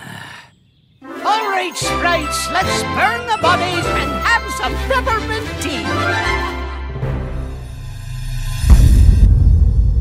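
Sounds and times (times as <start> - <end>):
deep cinematic boom: 7.6 - 10.0.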